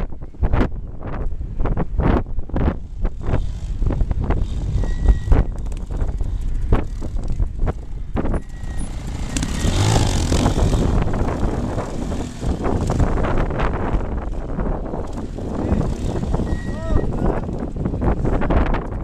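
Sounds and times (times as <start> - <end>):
wind buffeting microphone: 0.0 - 19.0
motorcycle engine revving: 2.6 - 19.0.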